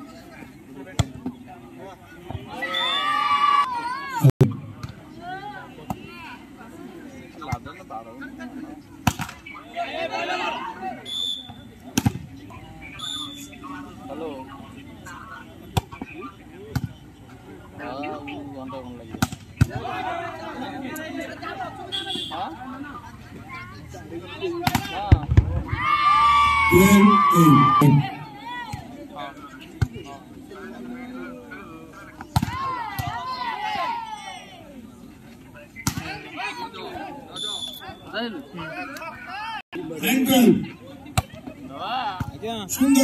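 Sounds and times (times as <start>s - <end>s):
spectators chattering: 0.0s - 43.0s
voices shouting together: 2.5s - 4.3s, 25.6s - 28.8s.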